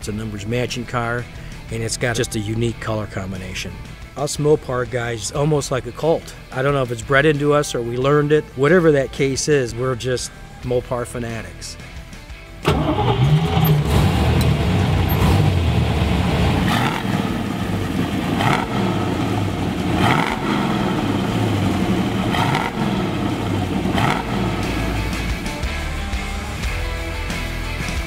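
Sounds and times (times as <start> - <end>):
car engine starting: 12.6 - 27.8
engine idling and revving: 12.6 - 28.0.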